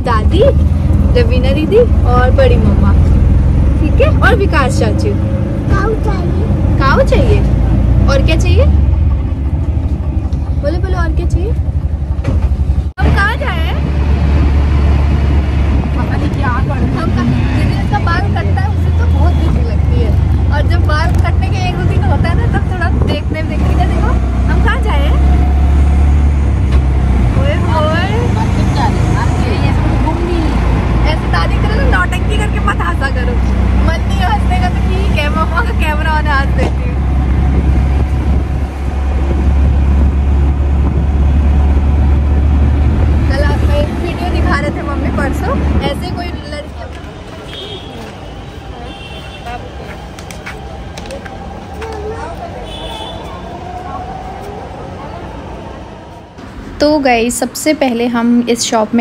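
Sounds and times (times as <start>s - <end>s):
voices: 0.0s - 12.3s, 13.0s - 59.0s
wind rumble on microphone: 0.0s - 48.2s
auto-rickshaw running: 0.0s - 59.0s.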